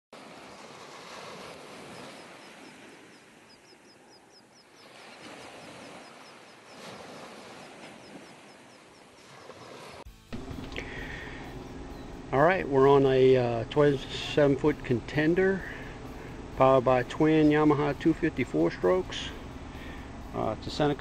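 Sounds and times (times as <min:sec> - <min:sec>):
surf washing up on beach: 0:00.2 - 0:11.6
bird chirping: 0:01.9 - 0:06.9, 0:11.5 - 0:13.0.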